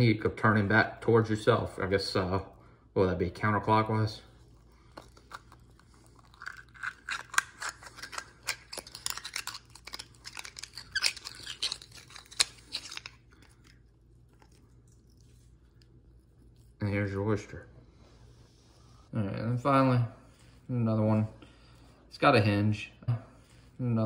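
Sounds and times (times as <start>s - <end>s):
knife crunching oyster shell: 4.8s - 15.1s.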